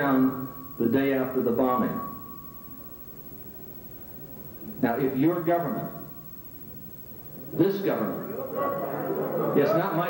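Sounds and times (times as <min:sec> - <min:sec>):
faint high steady tone: 0:00.0 - 0:10.0
steady low hum: 0:00.0 - 0:10.0.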